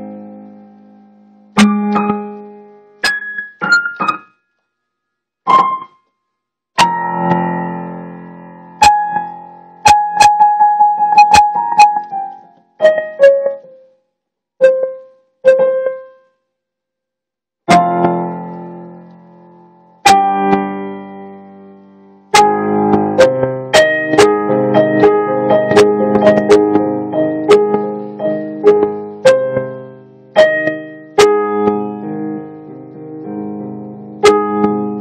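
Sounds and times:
solo piano: 0.0s - 4.4s, 5.4s - 6.1s, 6.8s - 14.0s, 14.6s - 16.4s, 17.6s - 35.0s.

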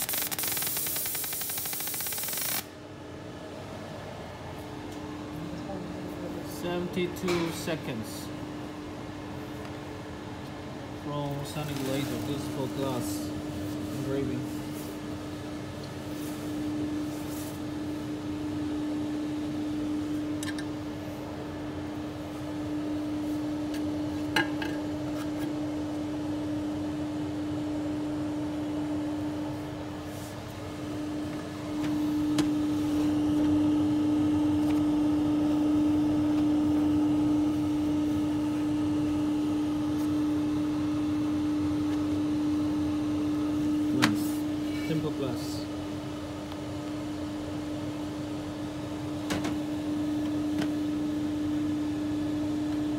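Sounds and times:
cooling fans humming: 0.0s - 52.9s.

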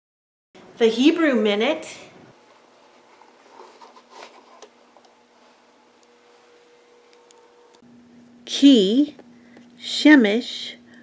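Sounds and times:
thin steady hum: 0.6s - 11.0s.

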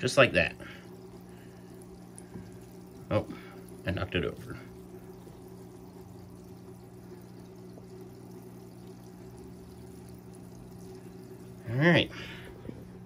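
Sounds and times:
aquarium water running: 0.0s - 13.0s
low even hum: 0.0s - 13.0s.

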